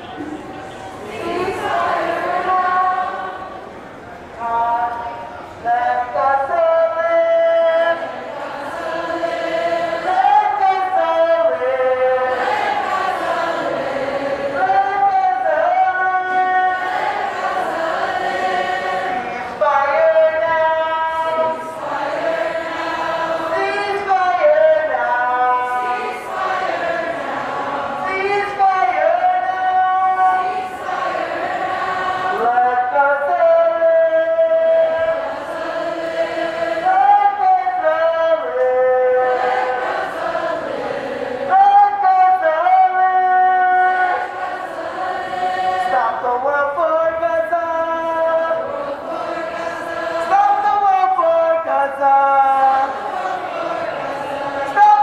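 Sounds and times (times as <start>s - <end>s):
group singing in unison: 0.0s - 3.7s, 7.4s - 42.6s, 43.3s - 55.0s.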